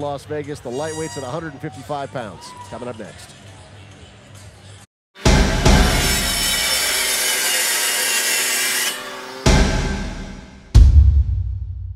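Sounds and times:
heavy impact hit ringing: 0:05.2 - 0:06.8, 0:09.5 - 0:11.8.

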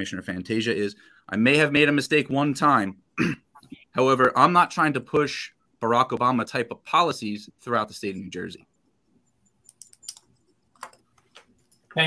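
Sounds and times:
man speaking: 0:03.8 - 0:08.7.

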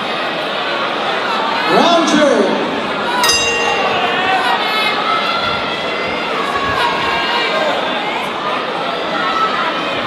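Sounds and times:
crowd shouting and chattering: 0:00.0 - 0:10.0
boxing ring bell ringing: 0:03.2 - 0:05.1.

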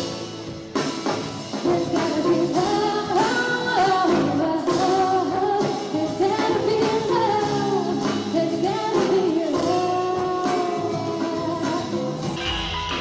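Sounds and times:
live band playing: 0:00.0 - 0:13.0
person singing: 0:01.5 - 0:13.0.

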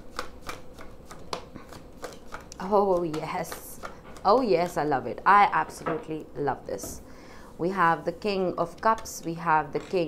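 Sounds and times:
cards being shuffled: 0:00.0 - 0:04.8.

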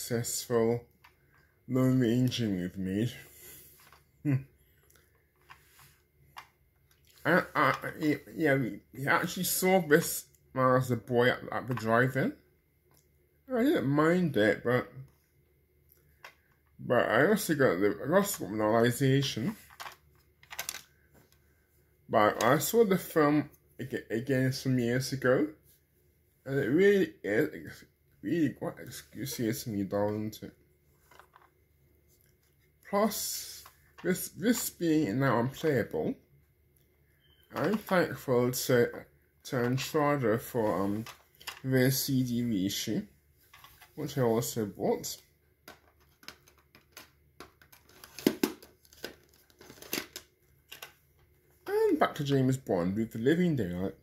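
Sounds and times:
plastic cases clicking and rattling: 0:19.6 - 0:20.9, 0:45.6 - 0:51.0.

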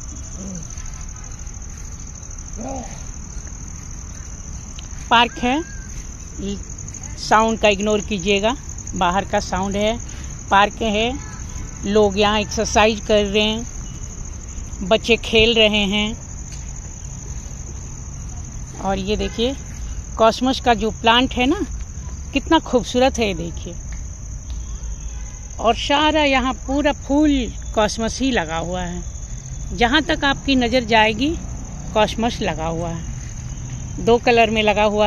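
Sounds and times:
crickets chirping: 0:00.0 - 0:35.0
high-pitched insect trill: 0:00.0 - 0:35.0
low outdoor rumble: 0:00.0 - 0:35.0
woman speaking: 0:05.0 - 0:05.8, 0:06.4 - 0:13.7, 0:14.8 - 0:16.2, 0:18.8 - 0:19.6, 0:20.2 - 0:23.8, 0:25.6 - 0:29.1, 0:29.7 - 0:33.1, 0:34.0 - 0:35.0.

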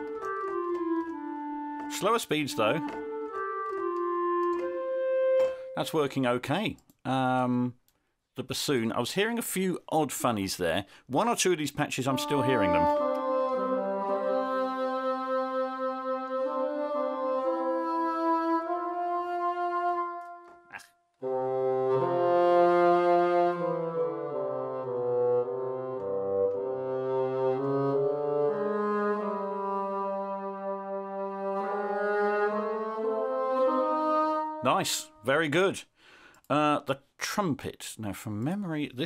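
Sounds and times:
sampled bassoon legato notes: 0:00.0 - 0:06.2, 0:12.0 - 0:35.5.

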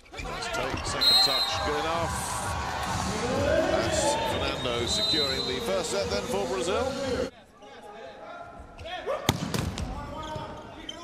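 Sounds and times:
indoor arena background noise: 0:00.0 - 0:11.0.

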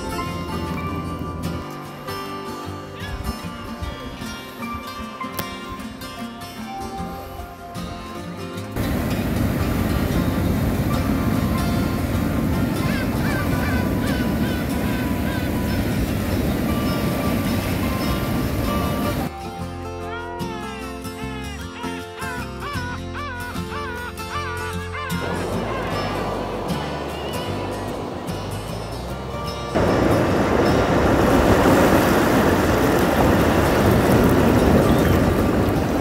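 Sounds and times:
background music: 0:00.0 - 0:33.0
waves breaking over rocks: 0:08.8 - 0:19.3, 0:25.2 - 0:36.0.

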